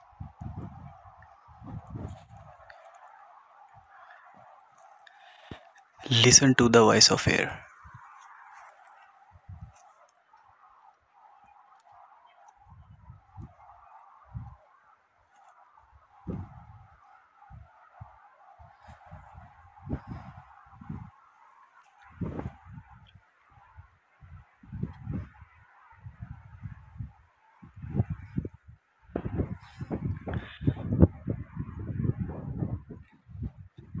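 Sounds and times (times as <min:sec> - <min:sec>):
wind rushing: 0:00.0 - 0:02.6, 0:16.2 - 0:16.9, 0:17.5 - 0:21.1, 0:22.0 - 0:23.1, 0:26.0 - 0:34.0
wind gusts buffeting microphone: 0:00.0 - 0:34.0.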